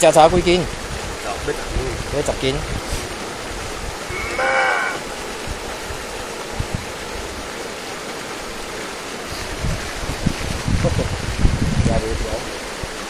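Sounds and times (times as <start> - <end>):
outdoor background noise: 0.0 - 11.7
person's high-pitched exclamation: 4.1 - 5.0.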